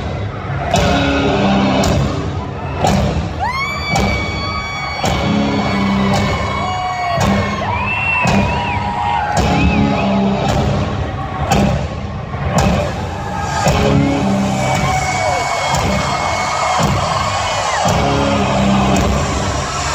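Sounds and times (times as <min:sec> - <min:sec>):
bass guitar: 0:00.0 - 0:19.9
pounding drum beat: 0:00.0 - 0:19.9
distorted electric guitars: 0:00.6 - 0:08.6, 0:12.6 - 0:19.9.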